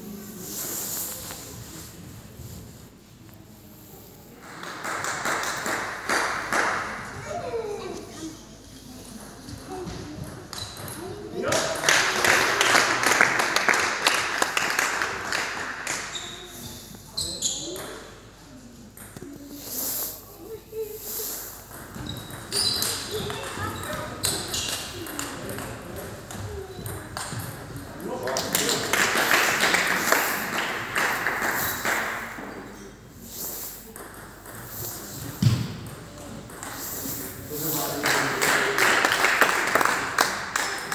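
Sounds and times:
spectators clapping and cheering: 4.4 - 7.2, 11.4 - 16.1, 28.2 - 32.4, 37.8 - 40.9.

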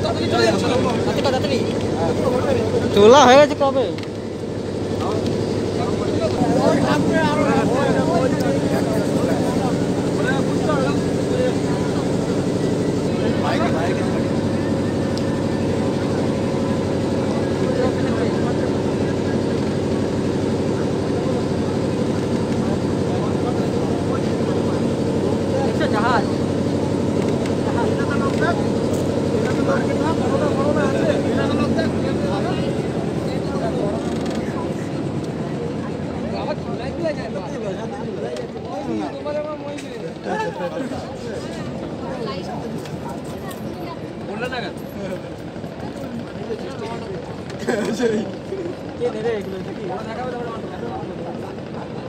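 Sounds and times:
diesel engine droning: 0.0 - 52.0
faint passengers' voices: 0.0 - 52.0.

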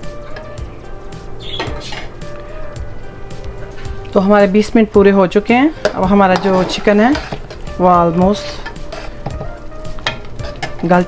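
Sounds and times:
background music: 0.0 - 11.0
metal clinking on steel pot: 8.6 - 11.0.

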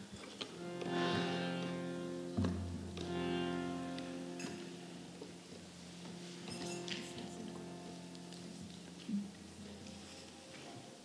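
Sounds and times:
harmonium low chord: 0.4 - 10.5.

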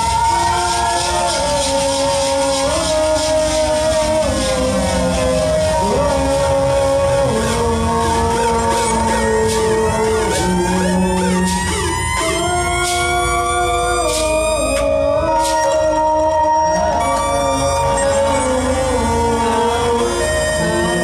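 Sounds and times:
band held notes: 0.0 - 21.0.

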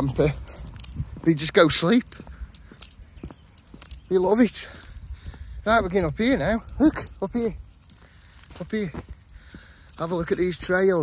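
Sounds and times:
footsteps on tarmac: 0.0 - 11.0
light clicks and jingles: 0.0 - 11.0.

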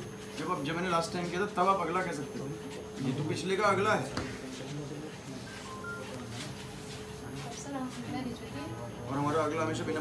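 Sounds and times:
faint background voices: 2.2 - 10.0
phone keypad beeps: 5.5 - 6.2.

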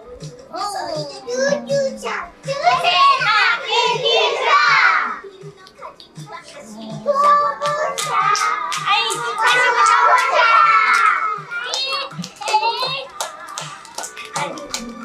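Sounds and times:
children's song with steady beat: 0.0 - 15.0
young children singing: 0.0 - 15.0
hands clapping: 5.5 - 15.0
children calling out: 6.7 - 13.2.

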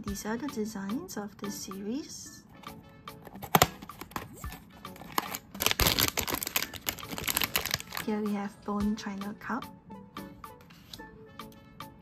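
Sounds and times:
background music: 0.0 - 12.0
cardboard packaging clicks and rustles: 3.2 - 8.0.

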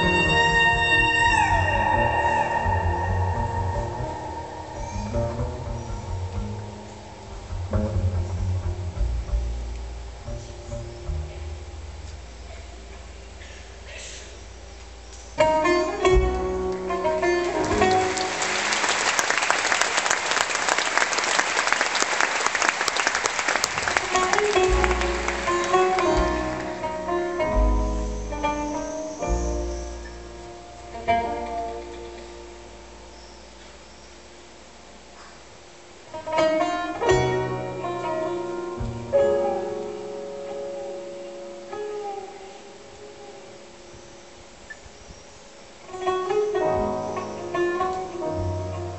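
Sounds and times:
oud and jazz band playing: 0.0 - 12.2, 15.4 - 19.3, 23.7 - 33.1
audience applauding: 17.4 - 26.9.

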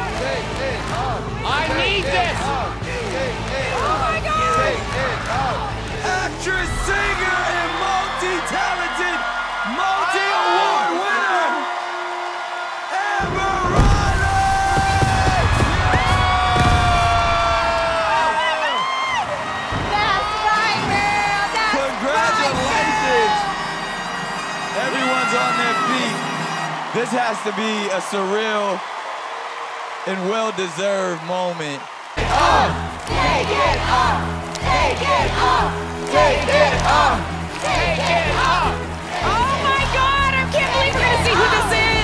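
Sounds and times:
show music with singing: 0.0 - 8.6, 32.2 - 42.0
audience cheering and whooping: 0.0 - 42.0
stage flame jets firing: 13.7 - 18.2.

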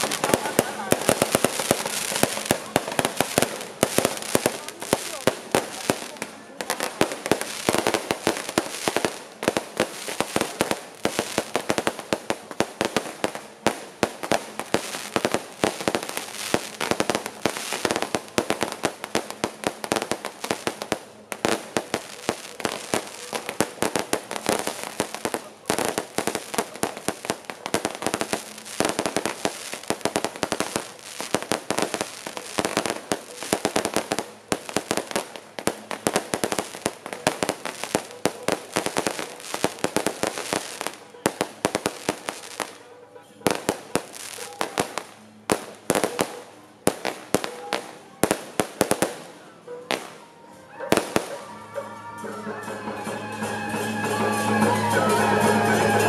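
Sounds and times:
firecrackers and fireworks banging: 0.0 - 56.0.

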